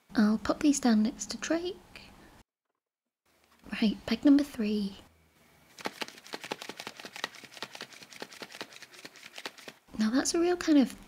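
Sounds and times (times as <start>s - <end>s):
foil bag crinkling: 5.8s - 9.9s.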